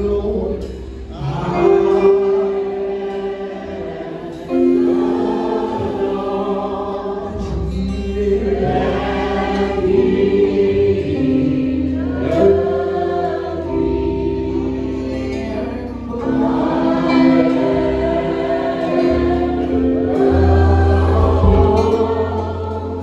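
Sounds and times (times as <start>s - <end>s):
keyboard: 0.0s - 23.0s
voices singing held notes: 0.0s - 23.0s
bass line: 4.6s - 23.0s.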